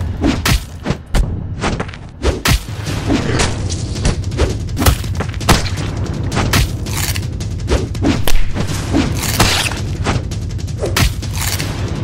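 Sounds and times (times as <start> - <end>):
steady low rumble: 2.6 - 12.0.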